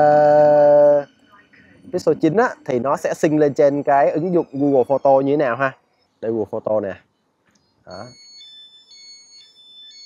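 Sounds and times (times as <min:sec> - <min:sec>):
high-pitched electronic tones: 0:00.0 - 0:10.0.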